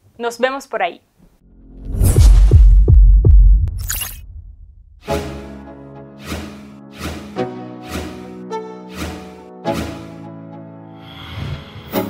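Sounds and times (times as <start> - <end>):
deep bass pulses falling pitch: 1.4 - 5.0.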